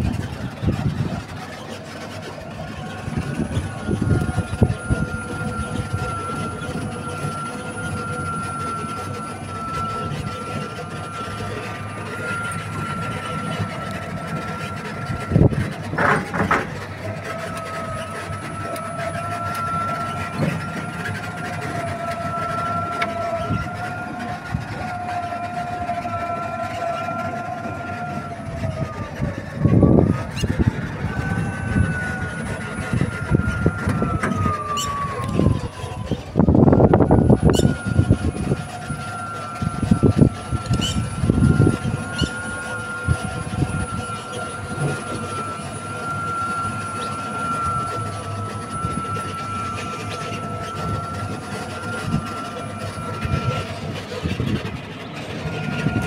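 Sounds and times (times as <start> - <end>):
wind rumble on microphone: 0.0 - 18.1, 27.7 - 56.0
vehicle motor whining: 0.0 - 56.0.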